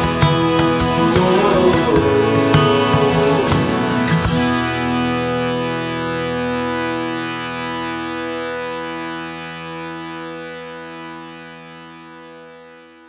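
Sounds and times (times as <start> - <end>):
held final guitar chord: 0.0 - 12.9.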